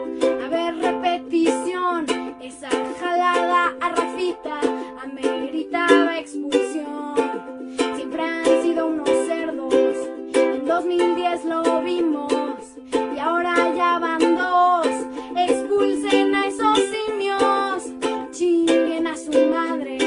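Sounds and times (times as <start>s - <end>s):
girl singing: 0.0s - 20.0s
ukulele strumming: 0.0s - 20.0s.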